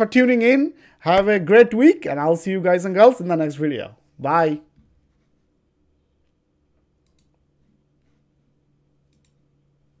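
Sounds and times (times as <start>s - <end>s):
faint low hum: 0.0s - 10.0s
computer mouse clicks: 6.2s - 7.4s, 9.0s - 9.5s.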